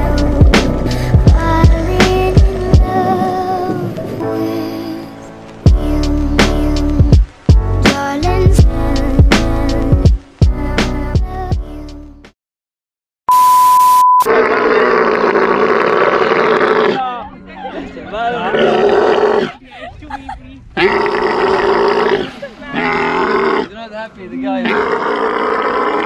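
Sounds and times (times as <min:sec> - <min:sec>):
loud steady beep: 0:13.3 - 0:14.3
camels bellowing: 0:18.4 - 0:19.6, 0:20.8 - 0:23.8.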